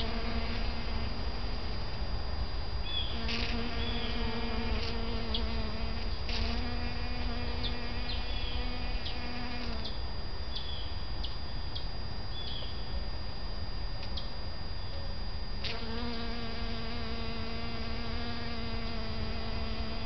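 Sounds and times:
bees buzzing: 0:00.0 - 0:12.8, 0:15.5 - 0:20.0.

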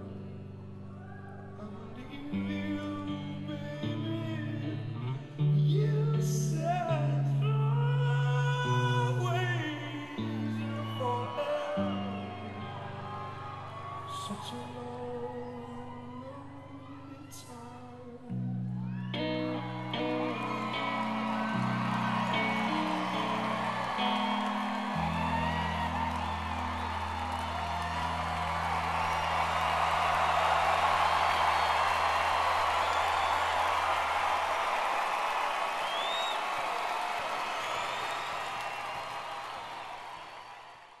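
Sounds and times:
audience cheering and applauding: 0:09.2 - 0:17.6, 0:18.7 - 0:41.0
electric guitar notes ringing: 0:19.1 - 0:30.0.

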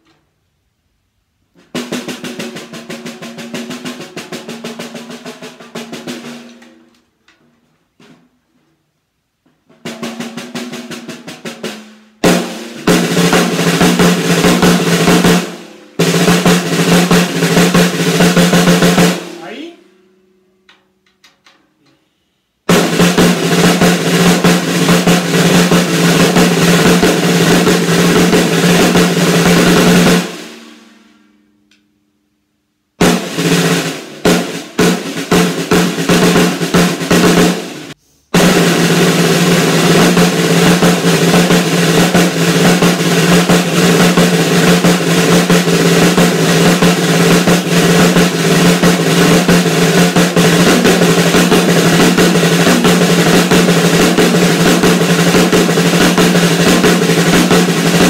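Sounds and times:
snare drum roll: 0:01.4 - 0:07.2, 0:09.4 - 0:19.8, 0:22.7 - 0:31.3, 0:33.0 - 0:58.0
snare drum strokes: 0:01.5 - 0:07.1, 0:09.6 - 0:19.8, 0:22.7 - 0:31.2, 0:33.0 - 0:58.0.

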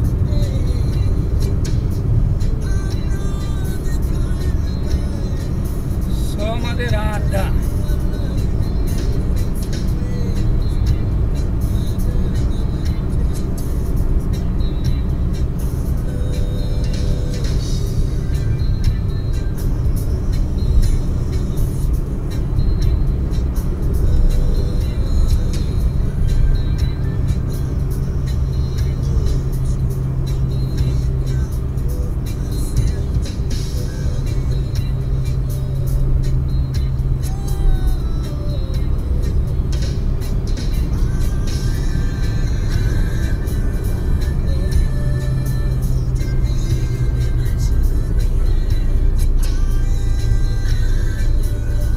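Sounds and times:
car road and engine rumble: 0:00.0 - 0:51.9
music playing: 0:00.0 - 0:51.9.

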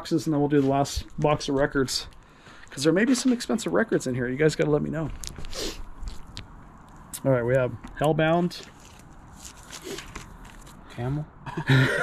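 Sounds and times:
plastic sleeve crinkly rustle: 0:08.6 - 0:10.8.

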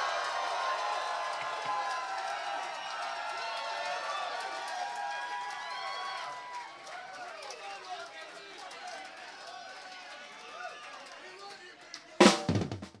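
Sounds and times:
concert crowd shouting and whooping: 0:00.0 - 0:08.0.

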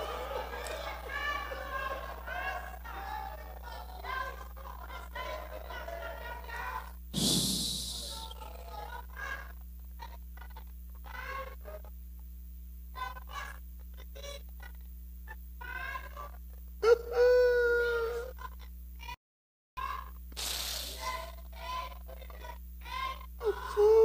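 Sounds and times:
loud held cry: 0:00.0 - 0:04.5
electrical hum: 0:00.0 - 0:19.2
loud rushing breath: 0:07.2 - 0:08.2, 0:20.4 - 0:21.0
man weeping and praying: 0:23.4 - 0:24.0.

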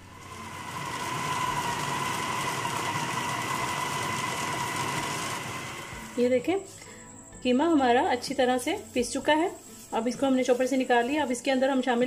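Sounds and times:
electric food chopper whining: 0:00.0 - 0:06.2.

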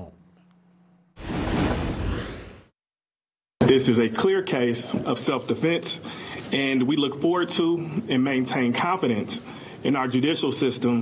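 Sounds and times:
whoosh sound effect: 0:01.2 - 0:02.7.

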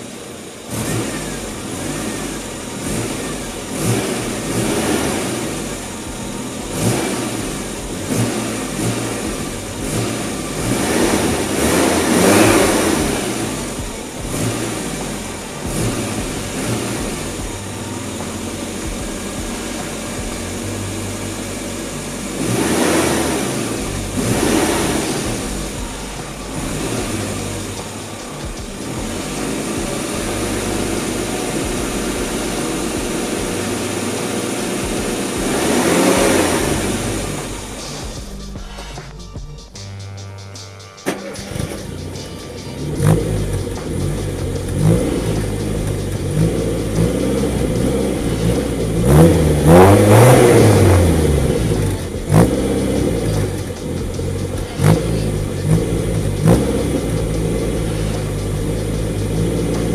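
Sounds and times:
car engine idling and revving: 0:00.0 - 0:59.9.

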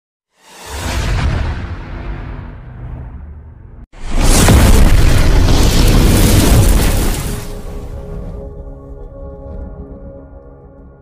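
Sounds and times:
explosion boom: 0:00.7 - 0:08.4
music: 0:07.4 - 0:11.0.

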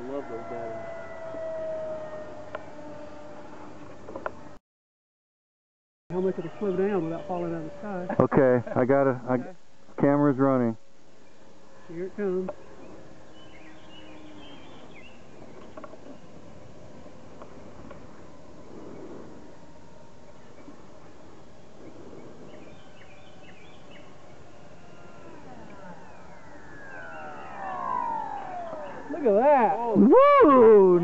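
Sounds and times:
model jet fan whining: 0:00.0 - 0:04.6, 0:06.2 - 0:09.1, 0:20.8 - 0:31.0.

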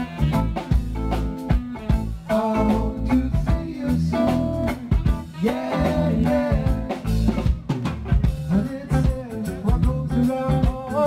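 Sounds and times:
drum kit: 0:00.0 - 0:11.0
live band music: 0:00.0 - 0:11.0
man singing into a microphone: 0:02.2 - 0:07.4, 0:08.5 - 0:11.0.

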